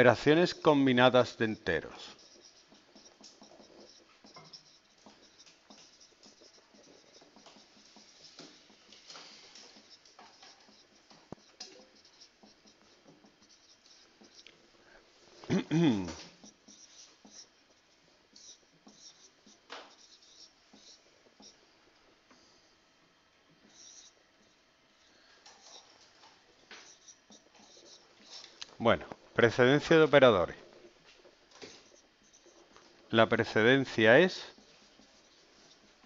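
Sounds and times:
marker pen scratching on whiteboard: 0:00.0 - 0:21.6, 0:23.4 - 0:36.0
man coughing: 0:15.4 - 0:16.3.

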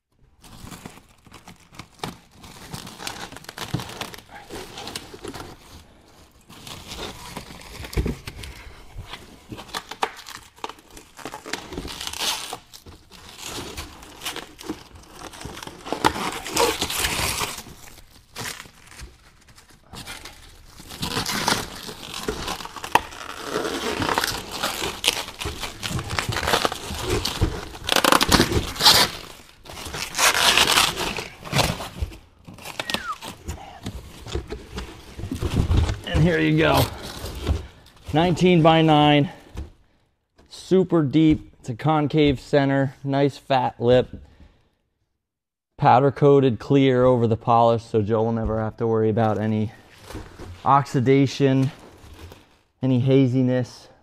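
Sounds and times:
packing material tearing and crumpling: 0:00.4 - 0:38.2.

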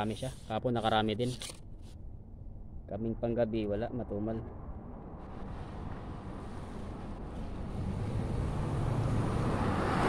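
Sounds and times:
passing road vehicle: 0:05.2 - 0:10.0.

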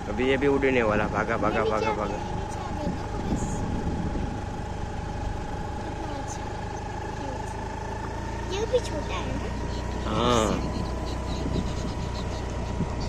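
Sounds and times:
scooter engine idling: 0:00.0 - 0:13.0.

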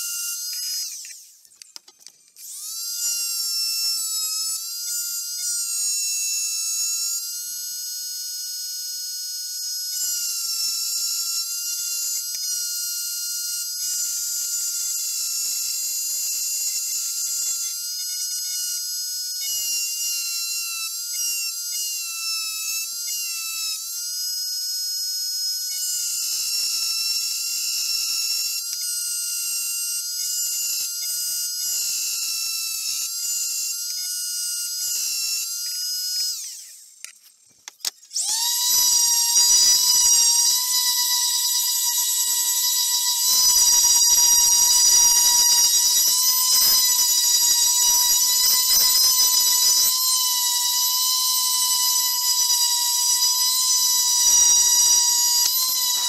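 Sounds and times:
rotary tool high-pitched whine: 0:00.0 - 0:56.0.

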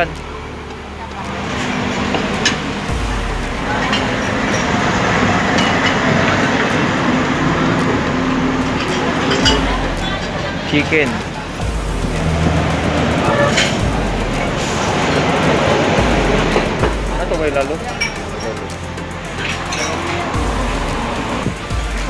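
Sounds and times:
indistinct background voices: 0:00.0 - 0:22.0
road traffic noise: 0:00.0 - 0:22.0
plates and utensils clinking: 0:03.7 - 0:11.6, 0:17.8 - 0:20.4.

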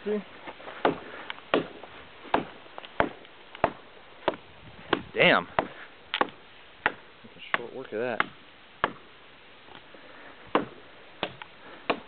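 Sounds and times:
hatchet chopping into tree trunk: 0:00.8 - 0:09.1, 0:10.5 - 0:12.0.

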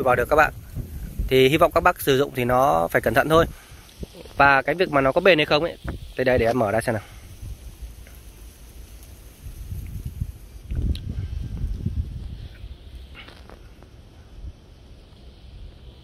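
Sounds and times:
wind rumbling on microphone: 0:00.0 - 0:16.0
faint handling ticks: 0:01.3 - 0:11.1.

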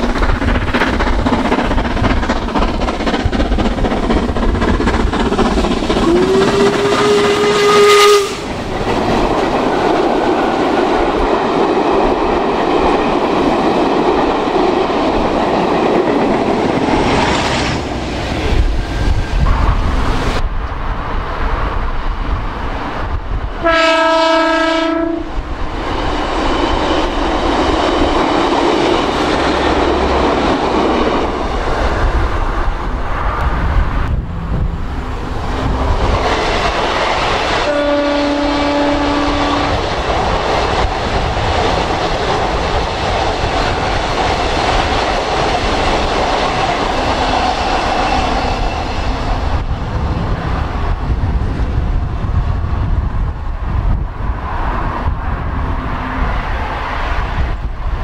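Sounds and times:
diesel train passing: 0:00.0 - 0:58.0
steam train passing: 0:00.0 - 0:58.0
express train horn: 0:05.9 - 0:08.6, 0:19.4 - 0:20.0, 0:23.6 - 0:25.4, 0:37.5 - 0:39.9
train horn blast: 0:06.0 - 0:08.5, 0:23.6 - 0:25.4, 0:37.6 - 0:39.8.

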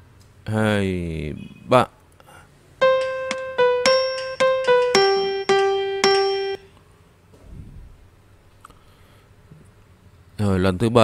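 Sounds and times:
piano keyboard melody: 0:02.8 - 0:06.7.

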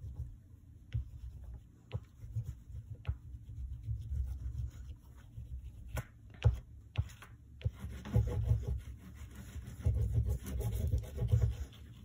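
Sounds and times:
oil pastel rubbing on paper: 0:00.0 - 0:06.0, 0:07.6 - 0:12.0.

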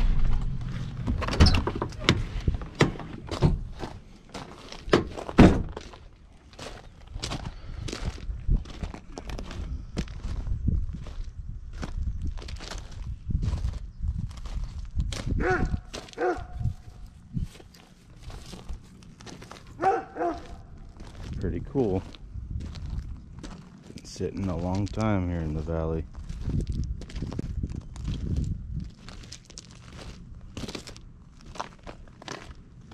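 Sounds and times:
truck door opening and shutting: 0:00.0 - 0:06.0
footsteps crunching on gravel: 0:02.2 - 0:32.9
dog barking: 0:15.4 - 0:16.6, 0:19.8 - 0:20.7.

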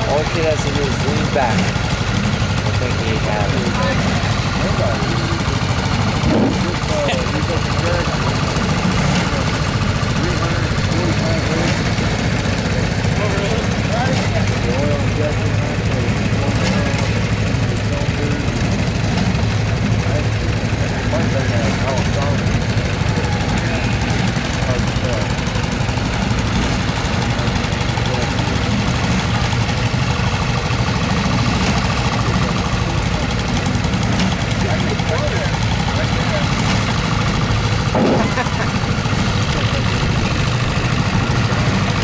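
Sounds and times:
small tractor engine humming: 0:00.0 - 0:42.0.

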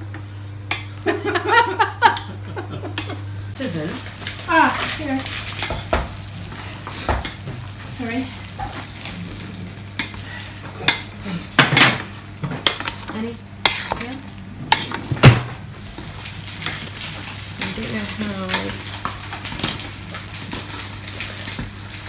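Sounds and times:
steady low hum: 0:00.0 - 0:22.0
utensil knocking and scraping pot: 0:12.6 - 0:15.5.

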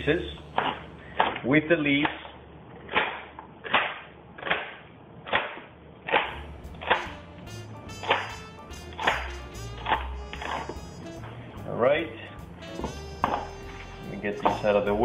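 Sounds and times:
background music: 0:06.3 - 0:15.0
knife chopping on cutting board: 0:06.7 - 0:07.3, 0:07.9 - 0:10.9, 0:12.7 - 0:14.8.

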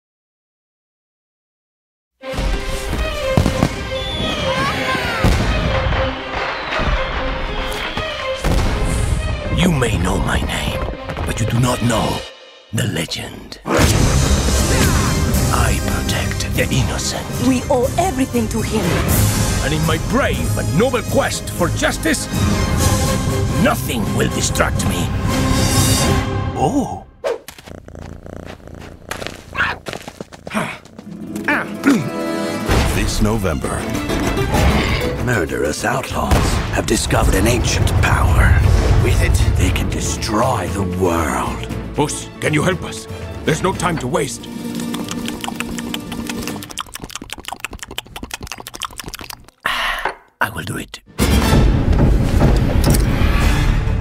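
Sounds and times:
music: 0:02.2 - 0:26.6, 0:31.0 - 0:46.6, 0:51.1 - 0:54.0
fireworks bangs: 0:03.4 - 0:04.4
cartoon cat purring: 0:27.4 - 0:31.2, 0:44.7 - 0:49.7.

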